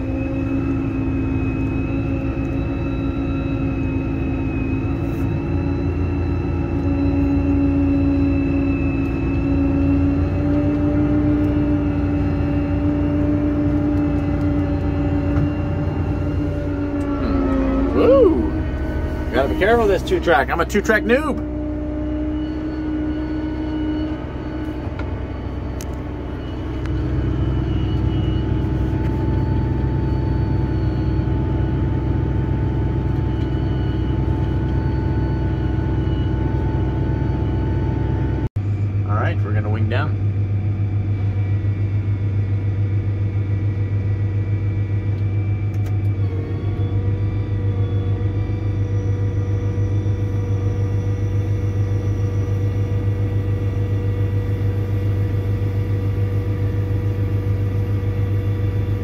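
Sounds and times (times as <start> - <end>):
wavering tone: 0.0 - 39.0, 40.4 - 59.0
tractor engine droning: 0.0 - 59.0.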